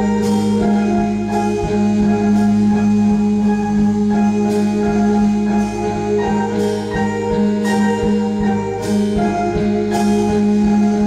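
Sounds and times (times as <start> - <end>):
electronic keyboard chords: 0.0 - 11.0
steady low beat: 0.0 - 11.0.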